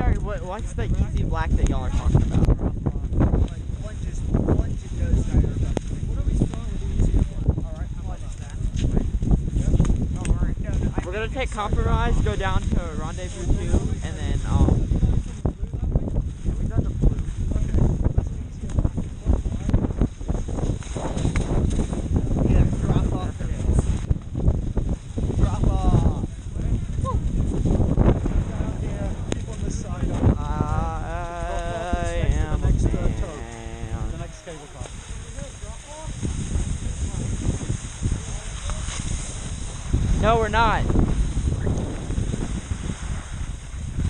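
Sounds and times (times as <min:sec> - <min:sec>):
wind rumble on microphone: 0:00.0 - 0:44.0
skis scraping over snow: 0:08.0 - 0:30.8, 0:31.4 - 0:44.0
person calling out: 0:30.6 - 0:32.2
skis clattering on wet snow: 0:34.3 - 0:44.0.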